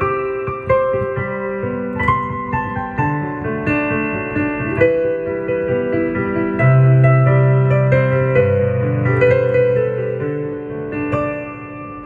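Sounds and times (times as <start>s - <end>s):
solo piano melody: 0.0s - 12.0s.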